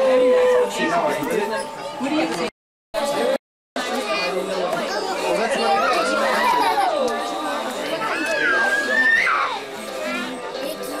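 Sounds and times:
adults and children chattering: 0.0 - 11.0.

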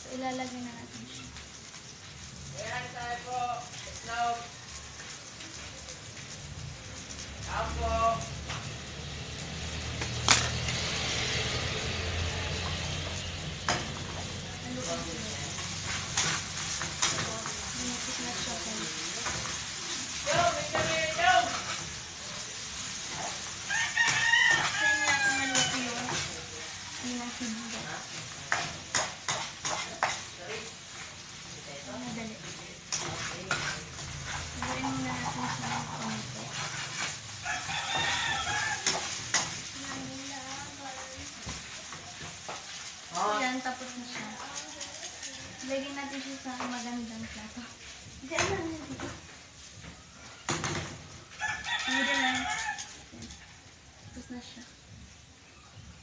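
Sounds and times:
noodles sizzling in a wok: 0.0 - 56.0
spatula scraping a wok: 3.7 - 7.5, 8.3 - 54.8
rooster crowing: 23.2 - 26.2, 37.3 - 39.5, 51.2 - 54.4.

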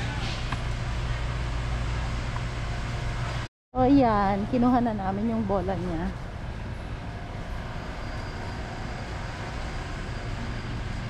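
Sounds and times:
large store hum: 0.0 - 11.0.

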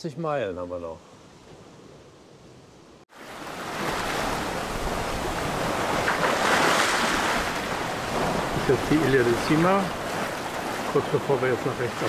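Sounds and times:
wind and waves rushing: 0.6 - 12.0.

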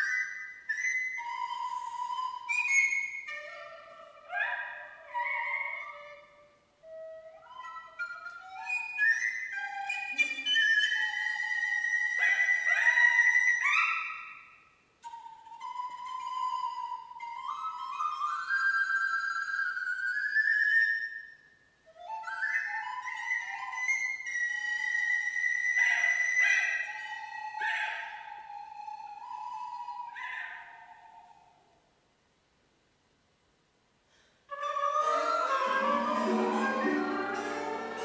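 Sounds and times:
chamber music with flute and harp: 0.0 - 31.6, 34.5 - 38.0.

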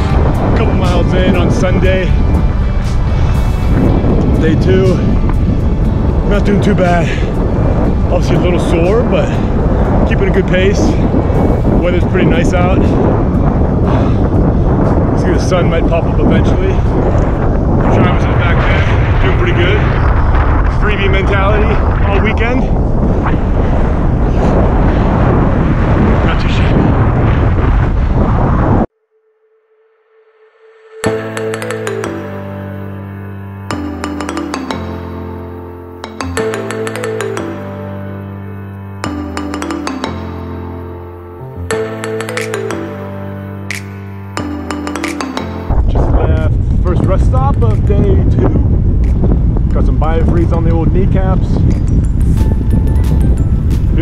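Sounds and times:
background music: 0.0 - 22.2, 30.1 - 49.3, 51.4 - 54.0
wind buffeting microphone: 0.0 - 28.9, 45.6 - 54.0.

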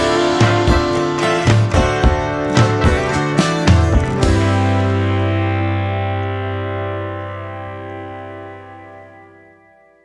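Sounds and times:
guitar chord ringing: 0.0 - 10.0.

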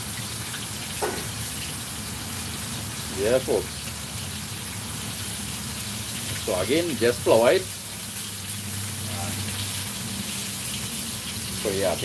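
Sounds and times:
fish frying in oil: 0.0 - 12.0.

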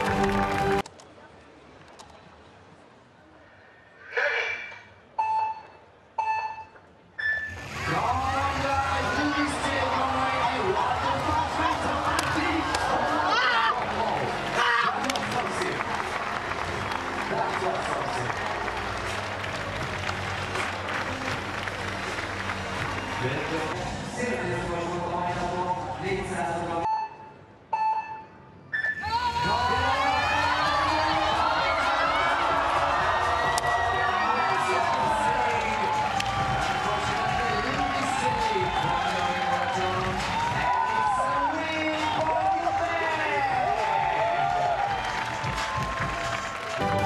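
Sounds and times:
electronic beeps: 5.1 - 7.6, 26.8 - 29.0
spoken call over loudspeaker: 7.8 - 15.9, 23.2 - 26.9, 34.1 - 44.0.

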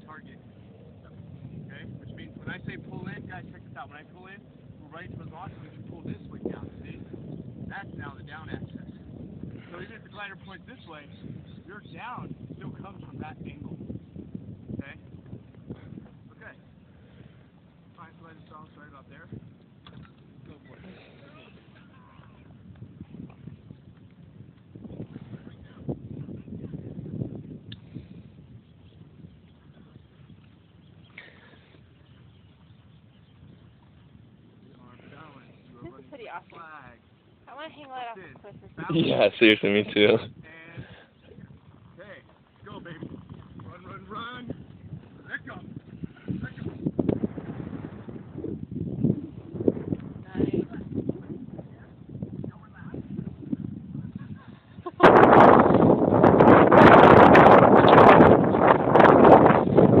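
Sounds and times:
wind rumble on microphone: 0.0 - 60.0.

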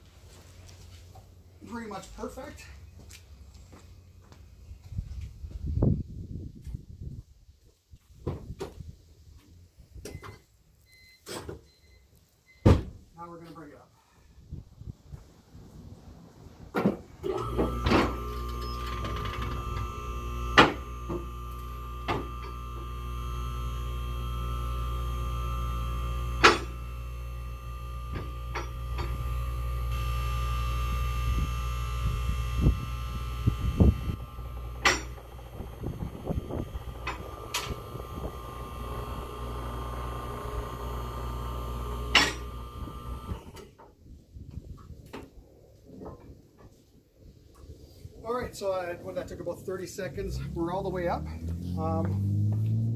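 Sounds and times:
hydraulic power unit running: 17.2 - 43.7.

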